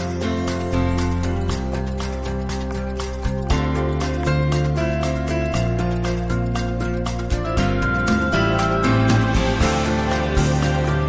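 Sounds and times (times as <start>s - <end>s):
television theme music: 3.1s - 11.0s.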